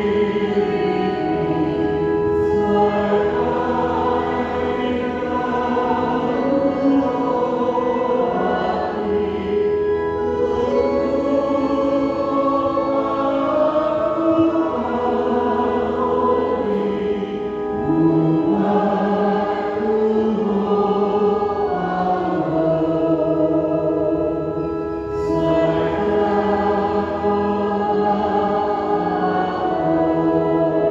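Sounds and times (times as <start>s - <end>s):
organ playing a hymn: 0.0s - 30.9s.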